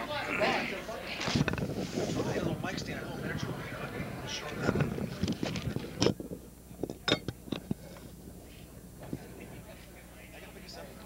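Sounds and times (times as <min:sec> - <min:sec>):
indistinct low voices: 0:00.0 - 0:11.0.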